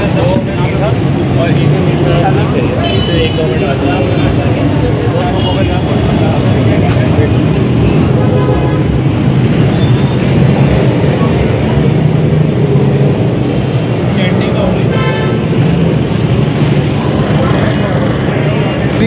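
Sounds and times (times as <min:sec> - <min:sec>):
crowd chatter: 0:00.0 - 0:19.0
traffic rumble: 0:00.0 - 0:19.0.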